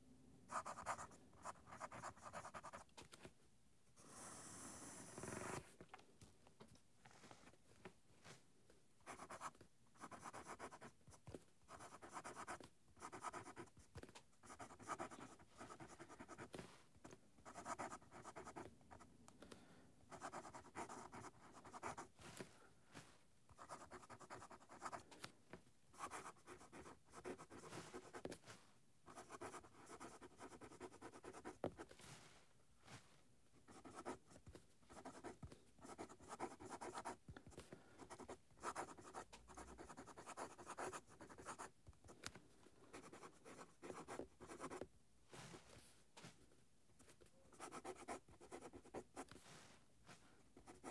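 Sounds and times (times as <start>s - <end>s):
fountain pen scratching on paper: 0.5s - 2.8s, 9.1s - 10.9s, 11.7s - 13.8s, 14.4s - 16.6s, 17.4s - 18.7s, 20.1s - 22.1s, 23.6s - 25.0s, 26.0s - 28.3s, 29.1s - 31.9s, 33.7s - 37.2s, 38.0s - 41.7s, 42.9s - 44.8s, 47.5s - 49.3s.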